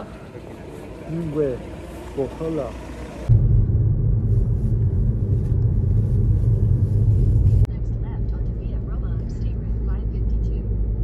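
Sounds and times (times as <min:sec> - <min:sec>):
car driving rumble inside cabin: 0:03.2 - 0:11.0.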